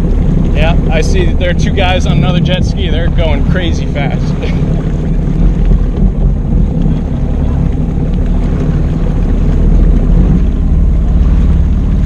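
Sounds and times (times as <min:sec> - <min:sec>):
jet ski engine drone: 0:00.0 - 0:12.0
wind on microphone: 0:00.0 - 0:12.0.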